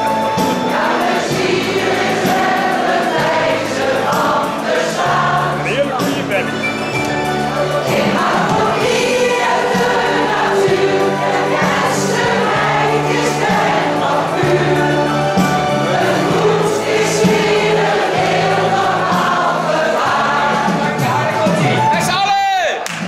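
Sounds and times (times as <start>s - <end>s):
choir singing: 0.0s - 21.8s.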